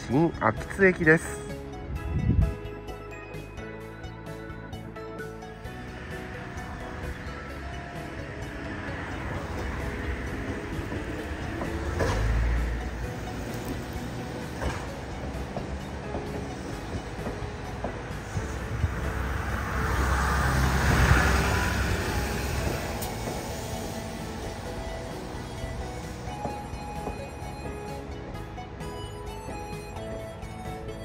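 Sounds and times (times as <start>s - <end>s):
electric train rumbling past: 0.0s - 31.0s.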